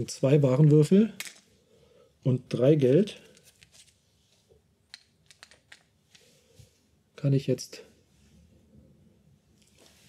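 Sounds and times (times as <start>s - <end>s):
game pieces clicking on table: 4.9s - 5.9s.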